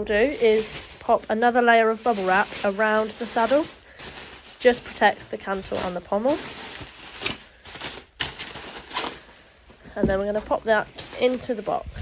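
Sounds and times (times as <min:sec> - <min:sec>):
bubble wrap crinkling: 0:00.0 - 0:12.0.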